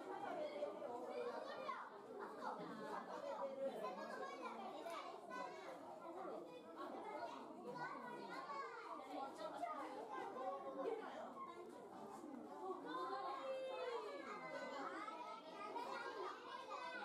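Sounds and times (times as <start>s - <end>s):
children's voices: 0.0s - 17.0s
crowd chatter: 0.0s - 17.0s.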